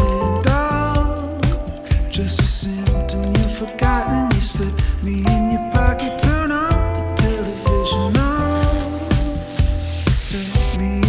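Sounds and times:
pop music with steady beat: 0:00.0 - 0:11.0
shower head spraying water: 0:07.2 - 0:11.0.

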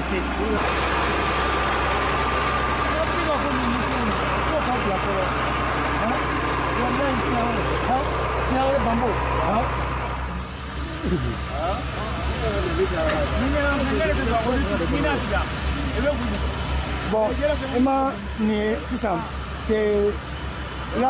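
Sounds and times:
water pump engine running: 0:00.0 - 0:21.0.

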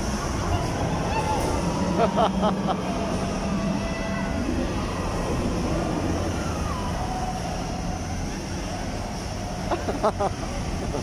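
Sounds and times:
amusement ride rumbling: 0:00.0 - 0:11.0.

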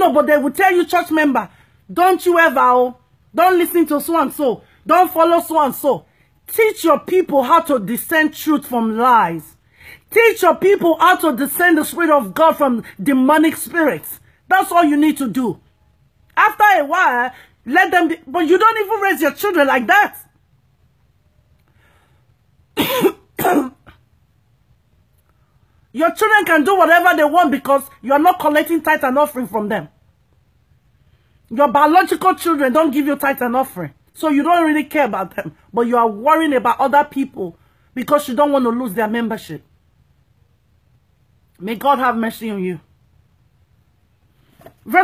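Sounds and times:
woman speaking: 0:00.0 - 0:15.7, 0:16.3 - 0:20.4, 0:25.9 - 0:30.0, 0:31.5 - 0:39.7, 0:41.5 - 0:42.9
woman coughing: 0:22.7 - 0:24.0.

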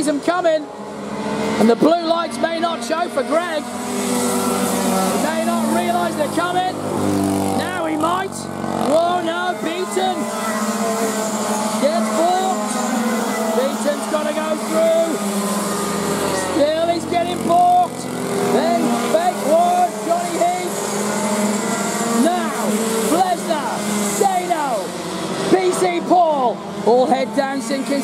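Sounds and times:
racing kart engines revving: 0:00.0 - 0:28.0.

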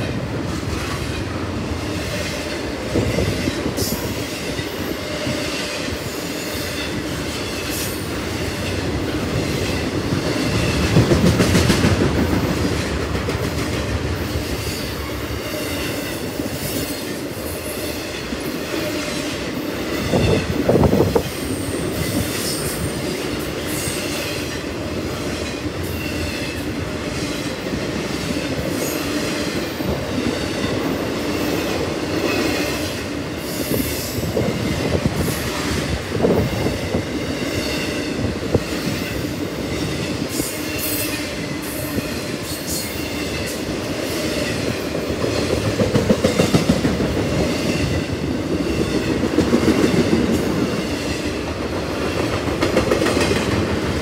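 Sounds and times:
train wheels rumbling on rails: 0:00.0 - 0:54.0.

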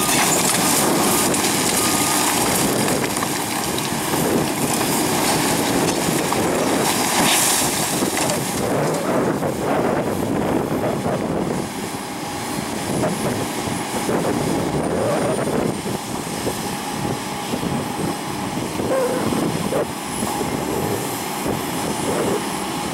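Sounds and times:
heavy diesel engines droning: 0:00.0 - 0:22.9.

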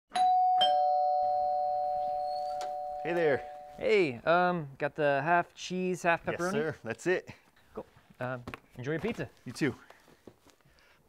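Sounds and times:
two-tone doorbell chime: 0:00.1 - 0:03.8.

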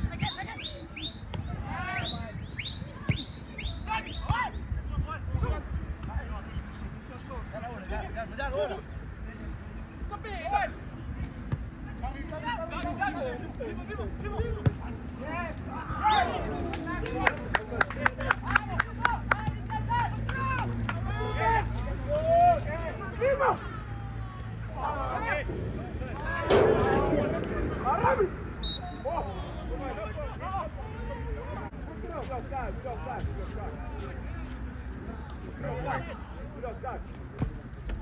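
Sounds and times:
players shouting: 0:00.0 - 0:04.7, 0:14.0 - 0:31.7
sharp claps: 0:16.6 - 0:21.1.

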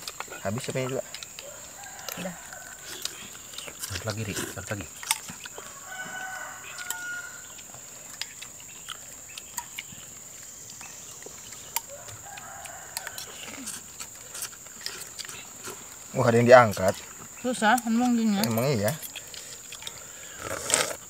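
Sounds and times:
cutlery clinking against bowls: 0:06.7 - 0:07.3, 0:08.1 - 0:09.9, 0:11.5 - 0:15.8, 0:17.7 - 0:20.0.

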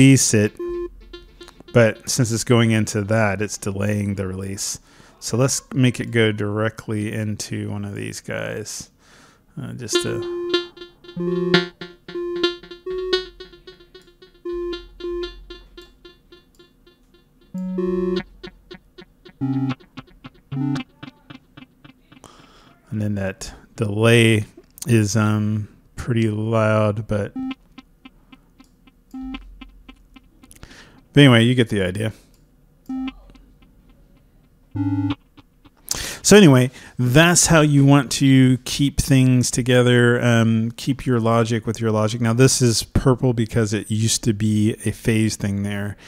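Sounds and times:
synthesizer notes with echoes: 0:00.0 - 0:04.2, 0:09.9 - 0:22.7, 0:27.3 - 0:31.2, 0:32.9 - 0:36.5.

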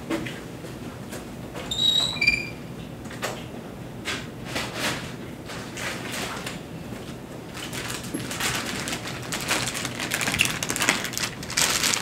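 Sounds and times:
plastic bag crinkling: 0:07.5 - 0:12.0.

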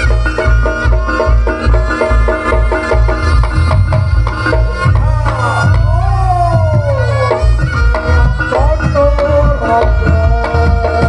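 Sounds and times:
drums beating fast rhythm: 0:00.0 - 0:11.0
reed pipe high steady note: 0:00.0 - 0:11.0.

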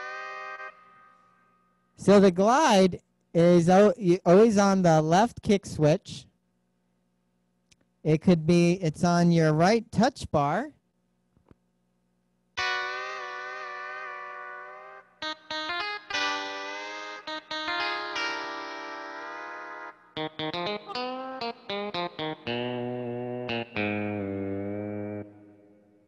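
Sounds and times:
organ short detached notes: 0:00.0 - 0:02.3, 0:12.6 - 0:26.0
electronic organ chords: 0:00.0 - 0:02.4, 0:12.6 - 0:26.0
low organ bass part: 0:12.6 - 0:26.0.

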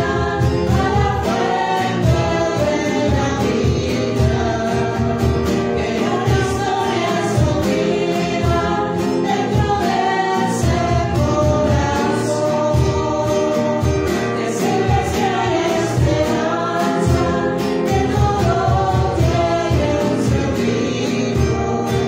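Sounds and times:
choir singing a hymn: 0:00.0 - 0:22.0
musical accompaniment: 0:00.0 - 0:22.0.

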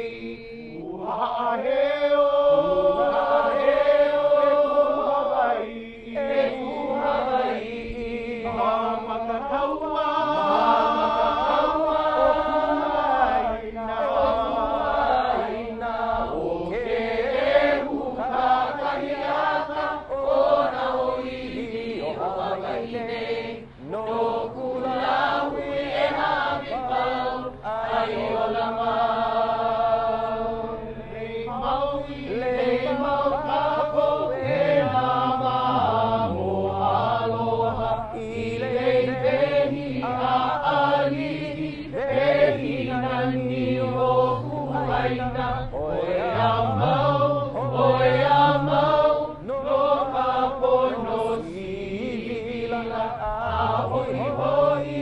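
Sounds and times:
crowd chanting in unison: 0:00.0 - 0:55.0.

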